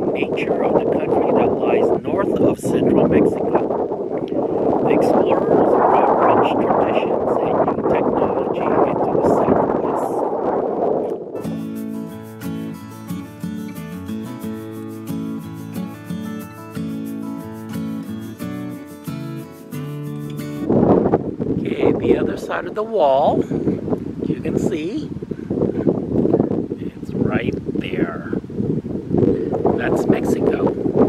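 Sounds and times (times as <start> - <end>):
wind buffeting microphone: 0.0 - 11.6, 20.4 - 31.0
rhythmic background music: 11.4 - 20.7.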